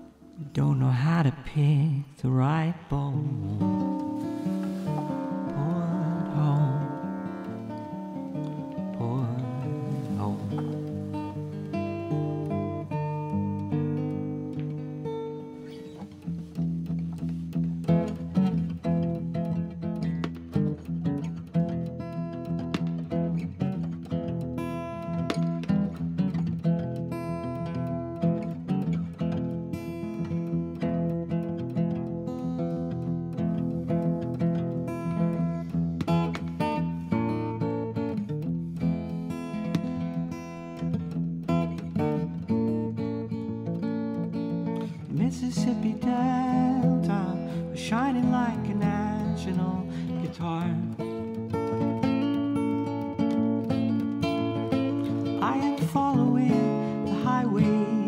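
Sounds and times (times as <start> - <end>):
acoustic guitar music: 0.0 - 58.0.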